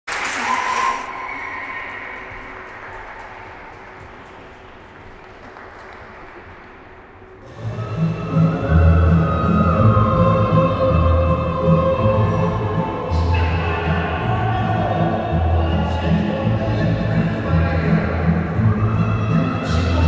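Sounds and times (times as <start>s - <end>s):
applause: 0.0s - 6.7s.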